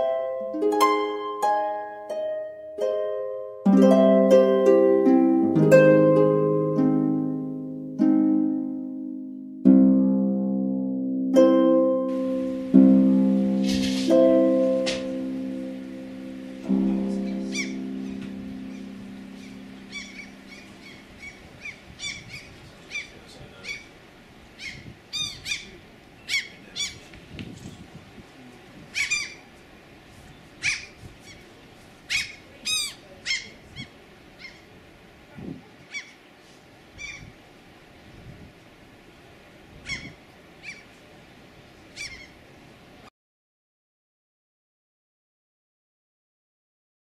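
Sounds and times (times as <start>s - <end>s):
music chord: 0.0s - 22.0s
birds calling sharply: 18.7s - 27.2s, 28.9s - 29.5s, 30.3s - 34.7s, 39.8s - 40.9s, 42.0s - 42.4s.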